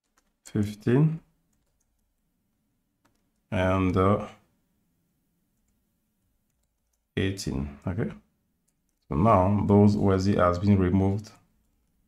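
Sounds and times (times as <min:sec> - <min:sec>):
man speaking: 0:00.5 - 0:01.3, 0:03.5 - 0:04.5, 0:07.2 - 0:08.3, 0:09.1 - 0:11.5.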